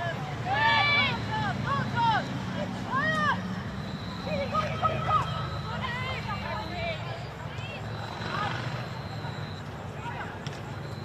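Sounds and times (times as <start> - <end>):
football players shouting: 0.0 - 3.4, 4.0 - 7.0.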